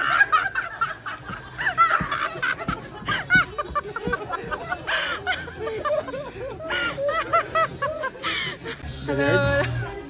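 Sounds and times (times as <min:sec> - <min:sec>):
men laughing and snickering: 0:00.0 - 0:10.0.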